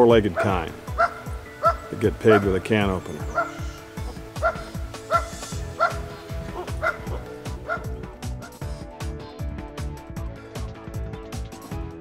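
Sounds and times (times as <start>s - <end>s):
background music: 0.0s - 12.0s
dog barking: 0.4s - 2.5s, 3.3s - 3.6s, 4.4s - 8.0s.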